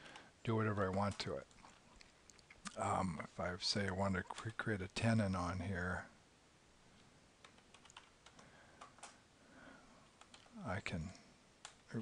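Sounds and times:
keyboard and mouse clicks: 7.4s - 9.2s, 10.0s - 10.6s.

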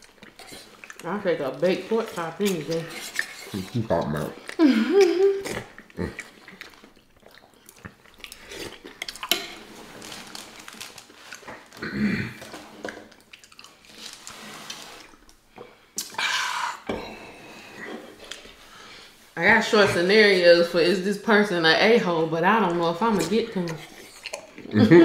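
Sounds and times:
chewing: 0.0s - 11.8s, 12.4s - 18.7s, 23.1s - 24.9s.

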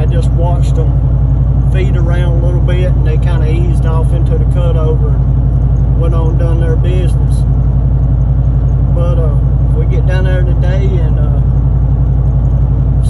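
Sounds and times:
truck engine and tyres droning: 0.0s - 13.0s.

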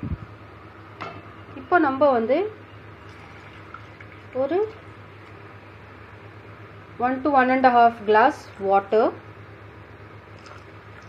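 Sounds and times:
faint hum: 0.0s - 11.0s
woman speaking: 1.6s - 2.6s, 4.4s - 4.8s, 7.0s - 9.2s.

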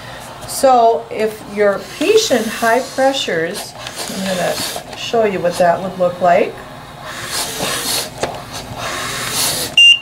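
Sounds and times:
ventilator pushing air: 0.0s - 10.0s
high-pitched alarm beep: 9.8s - 10.0s.

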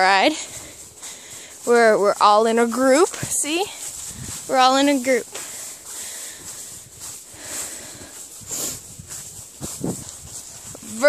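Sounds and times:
hooves crunching dry leaves: 0.0s - 11.0s.

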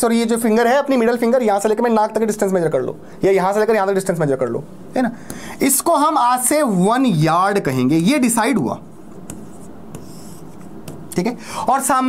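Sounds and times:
pen scratchy stroke: 9.1s - 10.8s
pen tapping on screen: 9.1s - 11.2s.

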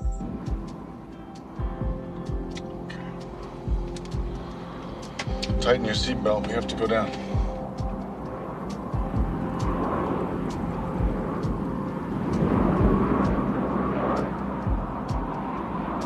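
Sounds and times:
light aircraft engine drone: 0.0s - 16.0s
rushing air: 0.0s - 16.0s
short low thumps: 3.7s - 4.5s, 8.9s - 10.2s, 10.9s - 13.7s, 14.7s - 15.4s.

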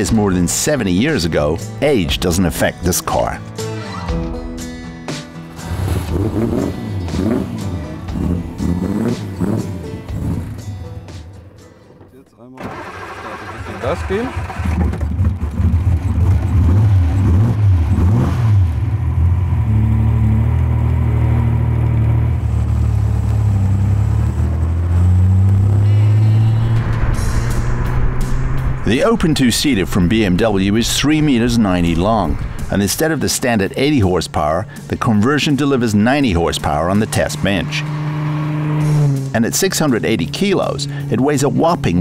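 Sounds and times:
car engine running loud and low: 5.5s - 11.0s, 12.6s - 42.0s.

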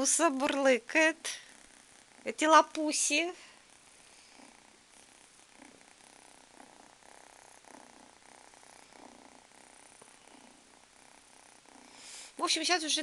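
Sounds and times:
kitten purring softly: 0.0s - 13.0s.

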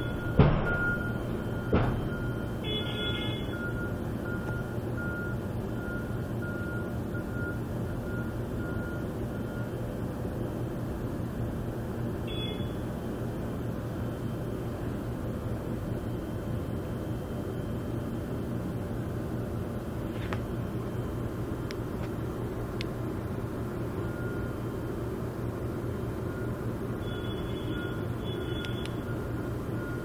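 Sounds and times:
truck reversing alarm beeping: 0.0s - 19.8s, 20.5s - 21.6s, 22.2s - 30.0s
truck engine rumble: 0.0s - 30.0s.

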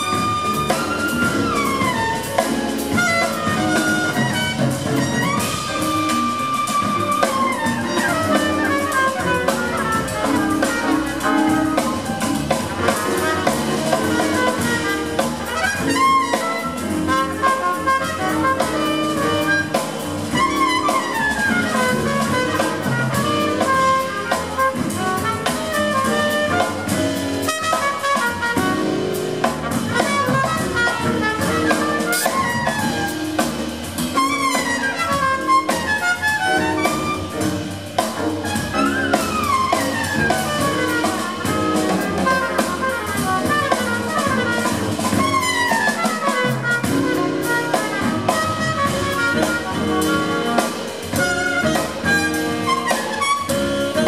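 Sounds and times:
double bass: 0.0s - 54.0s
drum kit: 0.0s - 54.0s
piano: 0.0s - 54.0s
tenor saxophone: 0.0s - 54.0s
trumpet: 0.0s - 54.0s.

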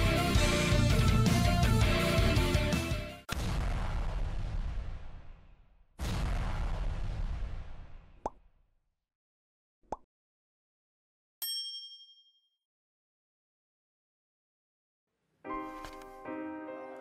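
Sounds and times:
bright bell ding: 11.4s - 12.5s.

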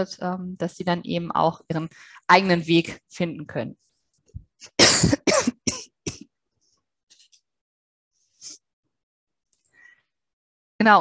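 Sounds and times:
woman coughing: 4.6s - 6.3s.

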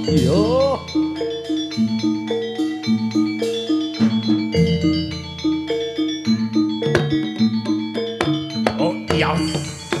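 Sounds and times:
gamelan music: 0.0s - 10.0s.

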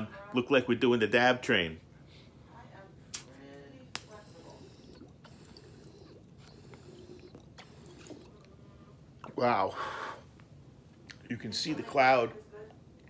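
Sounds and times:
water gurgling in glass: 4.1s - 8.5s.

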